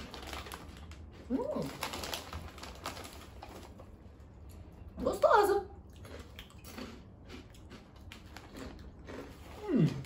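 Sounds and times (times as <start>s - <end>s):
snack bag crackling: 0.0s - 4.0s.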